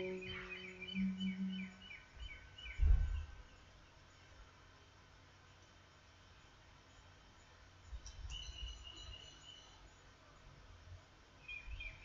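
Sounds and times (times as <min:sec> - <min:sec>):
small birds chirping: 0:00.0 - 0:04.4, 0:06.3 - 0:10.5, 0:11.4 - 0:12.0
steady low hum: 0:00.0 - 0:12.0
dull low thump: 0:02.8 - 0:03.3.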